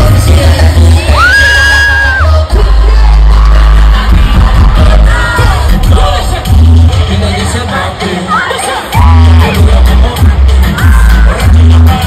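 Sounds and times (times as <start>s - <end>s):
reggaeton music with heavy bass: 0.0s - 12.0s.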